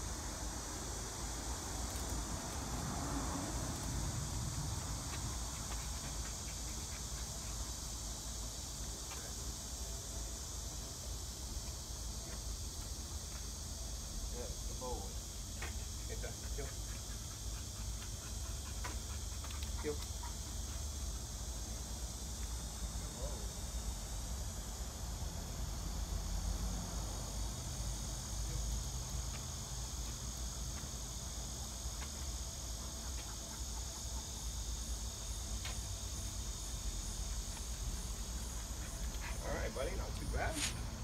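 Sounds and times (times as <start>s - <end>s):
high-pitched insect chorus: 0.0s - 41.0s.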